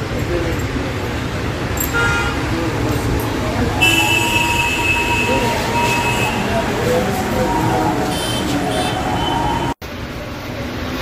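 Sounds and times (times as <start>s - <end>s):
indistinct voices: 0.0s - 9.8s
road traffic: 0.0s - 11.0s
high steady tone: 3.2s - 9.8s.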